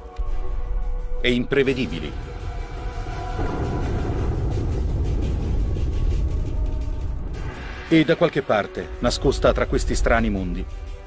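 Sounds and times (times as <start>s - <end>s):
deep steady rumble: 2.2s - 7.9s.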